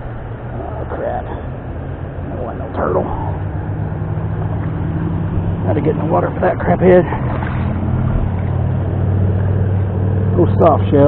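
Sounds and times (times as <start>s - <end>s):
river water rushing: 0.0s - 10.4s
steady low hum: 0.0s - 11.0s.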